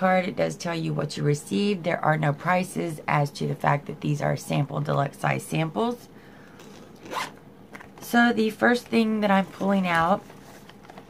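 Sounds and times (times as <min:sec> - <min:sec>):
zipper pulled open: 0:06.6 - 0:08.0.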